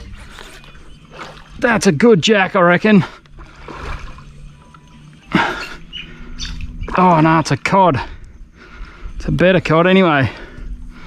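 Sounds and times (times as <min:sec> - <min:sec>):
low hum: 0:00.0 - 0:11.0
fish splashing in water: 0:03.3 - 0:04.4.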